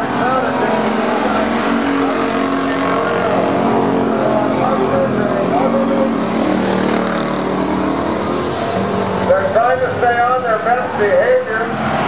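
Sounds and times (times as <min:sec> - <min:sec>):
race car engines droning: 0:00.0 - 0:12.0.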